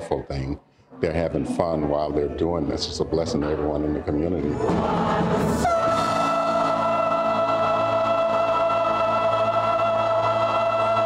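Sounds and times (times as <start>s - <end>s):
choir holding a sung note: 4.4s - 11.0s.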